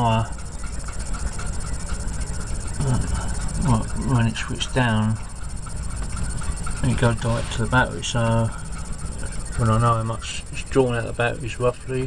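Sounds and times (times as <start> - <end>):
steady low rumble: 0.0 - 12.0
man speaking: 2.8 - 5.2, 6.8 - 8.6, 9.6 - 12.0.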